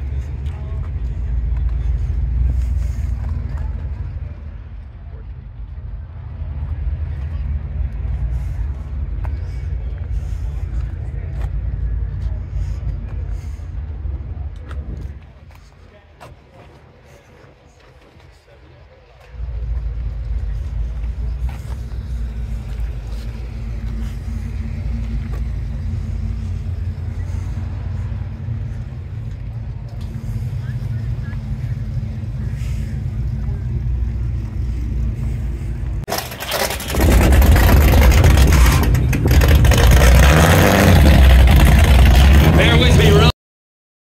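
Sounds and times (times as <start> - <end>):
engine idling rumble: 0.0 - 43.3
loud rough engine and exhaust: 0.0 - 43.4.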